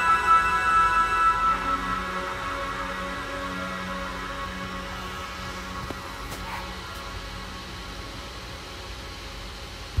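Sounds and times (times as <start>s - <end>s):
low hiss and rumble: 0.0s - 10.0s.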